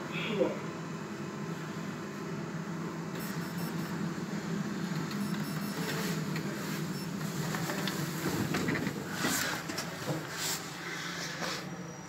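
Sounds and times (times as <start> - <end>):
lift mechanical hum: 0.0 - 12.0.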